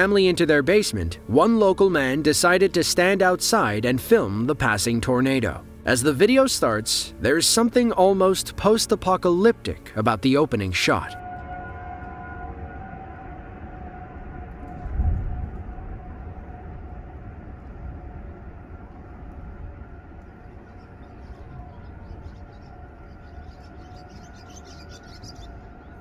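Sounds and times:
warning siren wailing: 0:10.8 - 0:26.0
wind buffeting microphone: 0:13.4 - 0:26.0.

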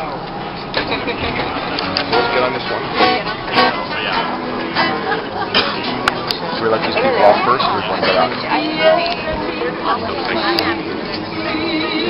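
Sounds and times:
people's voices: 0:00.0 - 0:12.0
acoustic guitar strumming: 0:00.9 - 0:12.0.

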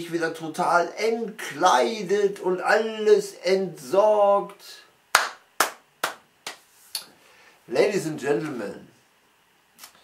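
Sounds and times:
man clapping hands: 0:05.1 - 0:06.6.

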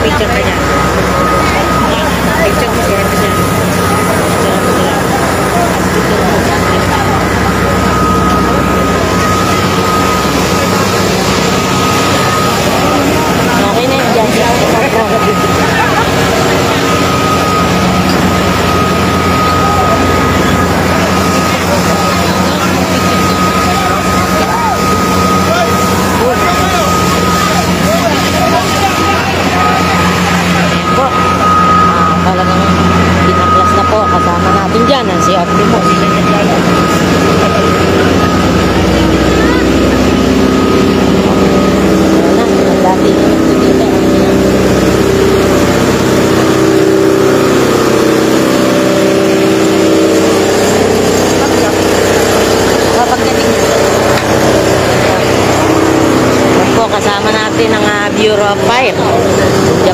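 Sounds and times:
fire truck engine running: 0:00.0 - 0:59.9
people talking: 0:00.0 - 0:59.9
thin steady whine: 0:00.0 - 0:59.9.

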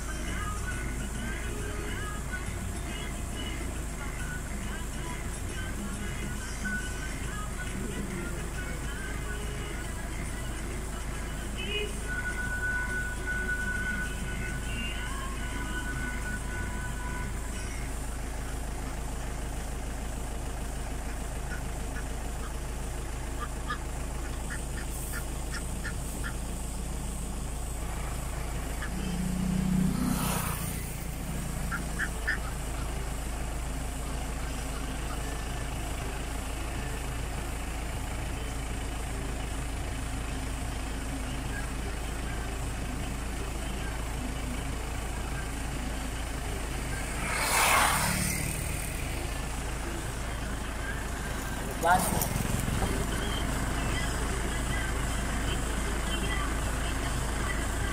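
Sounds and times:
low engine hum: 0:00.0 - 0:57.9
vehicles passing: 0:00.0 - 0:57.9
ducks quacking: 0:21.0 - 0:22.6, 0:23.2 - 0:26.5, 0:28.2 - 0:30.8, 0:31.4 - 0:33.0.

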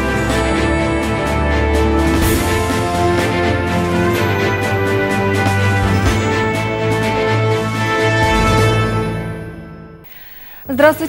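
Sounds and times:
news theme music: 0:00.0 - 0:11.0.

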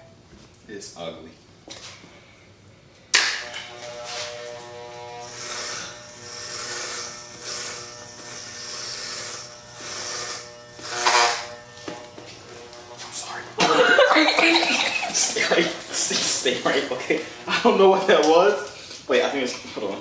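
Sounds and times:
electric hair clippers buzzing: 0:03.1 - 0:17.2.

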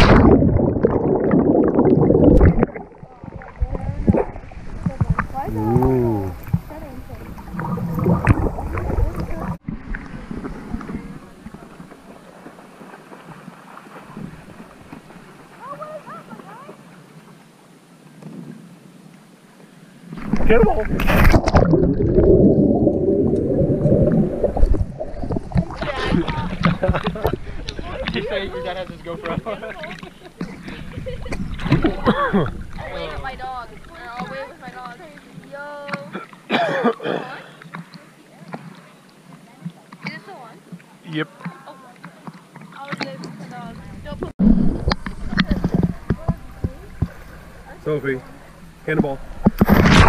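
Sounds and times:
underwater churning water gurgle: 0:00.0 - 0:12.4, 0:20.1 - 0:36.8, 0:41.4 - 0:50.0.

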